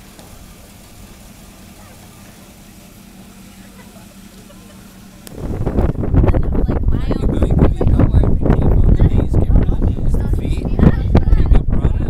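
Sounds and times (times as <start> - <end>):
vehicle engine idling: 0.0 - 11.4
wind buffeting microphone: 5.0 - 12.0.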